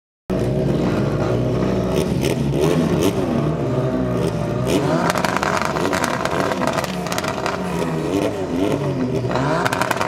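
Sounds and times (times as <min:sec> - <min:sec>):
car engines idling: 0:00.3 - 0:10.0.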